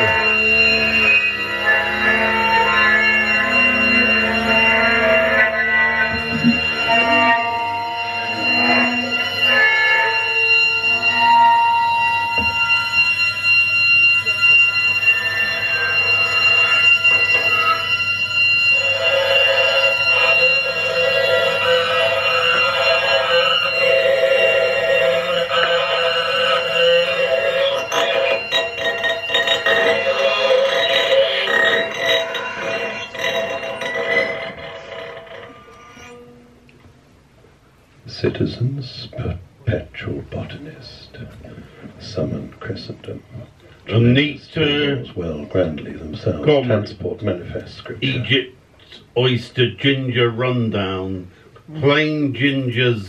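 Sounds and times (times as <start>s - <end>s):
dense rasping texture: 0.0s - 36.7s
alarm-like held tones: 0.0s - 53.0s
experimental noise music: 0.0s - 53.0s.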